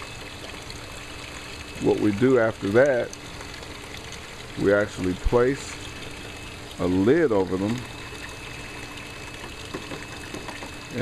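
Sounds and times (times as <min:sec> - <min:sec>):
faint steady hum: 0:00.0 - 0:11.0
water trickling through gravel: 0:00.0 - 0:11.0.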